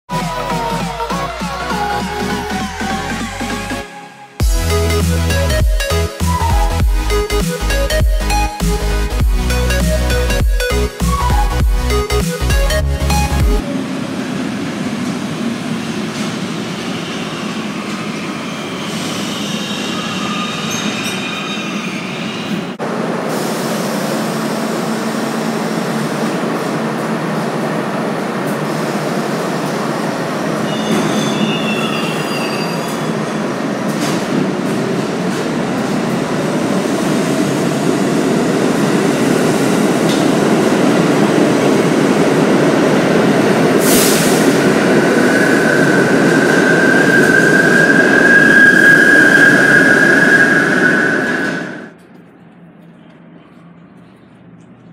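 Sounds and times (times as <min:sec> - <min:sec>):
subway train rumbling on tracks: 0:00.1 - 0:54.9
steady high-pitched squeal: 0:16.8 - 0:22.8, 0:43.1 - 0:52.0
train wheel squeals: 0:16.9 - 0:22.8, 0:30.6 - 0:33.4, 0:44.0 - 0:51.9.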